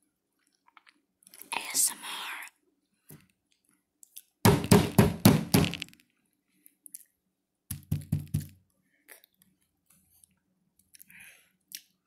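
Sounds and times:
knocks on something hard: 4.5 - 5.8.

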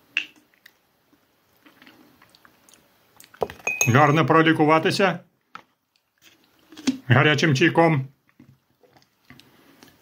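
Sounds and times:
spoon clicking on glass jar: 3.6 - 4.2.

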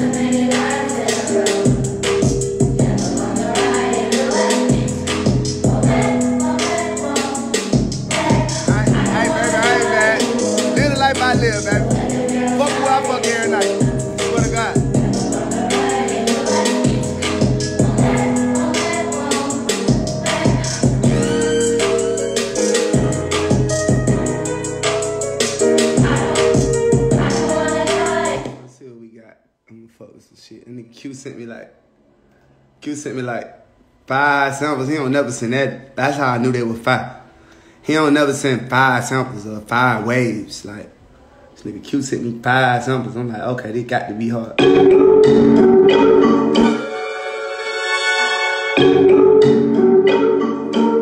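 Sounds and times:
choir-like vocal sample: 0.0 - 25.0, 25.6 - 28.7
fast hi-hats ticking: 0.0 - 28.4
deep bass notes: 0.0 - 28.6.

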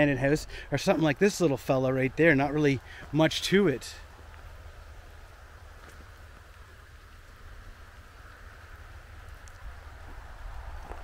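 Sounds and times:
light rain patter: 0.0 - 11.0.

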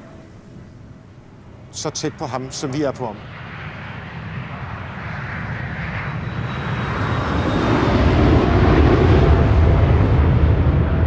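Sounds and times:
faint high whine: 0.0 - 8.0
jet airliner passing overhead: 0.0 - 11.0
deep rumble: 3.3 - 11.0.

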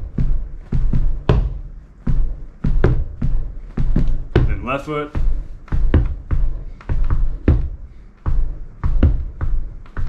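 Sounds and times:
sneakers tapping a rug: 0.0 - 10.0.

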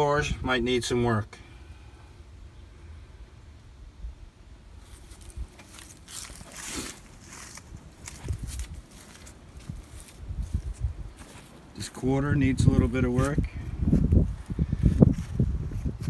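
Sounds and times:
footsteps outdoors: 4.7 - 16.0
rustling: 4.8 - 11.6.

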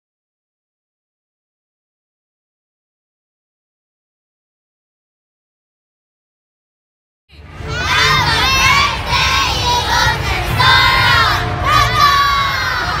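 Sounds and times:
girls shouting and cheering: 7.4 - 13.0.

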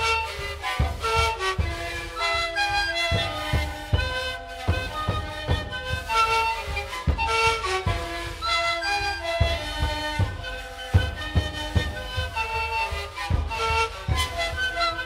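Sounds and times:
panpipes playing melody: 0.0 - 15.0.

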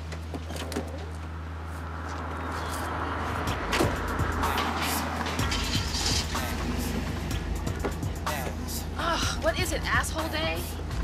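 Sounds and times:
car driving up: 1.0 - 8.9
music playing: 3.3 - 11.0.

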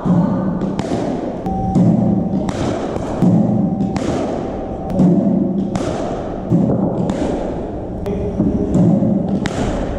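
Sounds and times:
steady low hum: 0.0 - 9.9
cricket bat striking ball: 0.8 - 7.6, 8.4 - 9.9.

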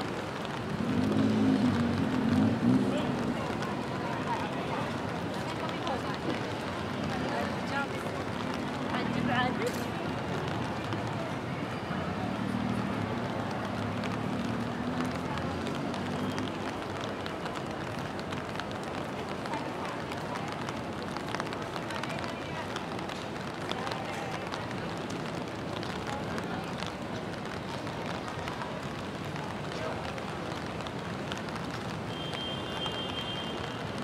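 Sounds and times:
rain hissing: 0.1 - 11.1.

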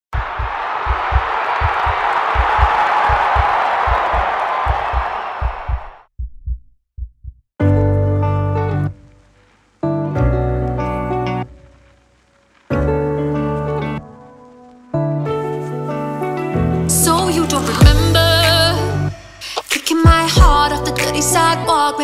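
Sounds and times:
heartbeat thumping: 0.1 - 7.5.

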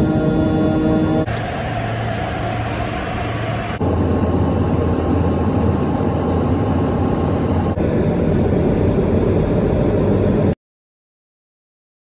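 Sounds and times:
airliner cabin engine rush: 0.0 - 10.6.

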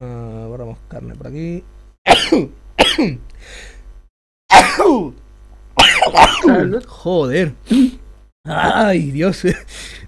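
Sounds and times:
person coughing hard: 2.1 - 3.2, 4.5 - 5.1, 5.8 - 6.8.

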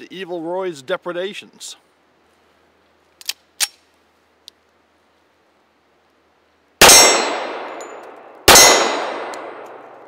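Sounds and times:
pistol mechanical clicks: 3.2 - 3.9.

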